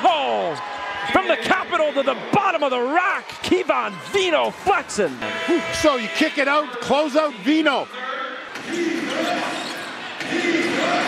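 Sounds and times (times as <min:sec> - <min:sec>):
murmur of crowd: 0:00.0 - 0:11.0.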